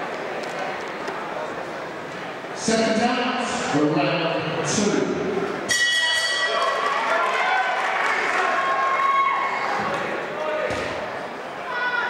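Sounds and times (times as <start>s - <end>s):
boxing ring bell ringing: 5.7s - 6.9s
crowd shouting: 6.3s - 10.9s.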